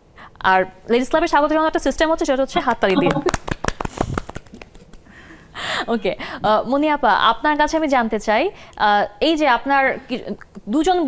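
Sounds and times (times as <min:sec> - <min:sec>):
people clapping: 0:02.8 - 0:05.0.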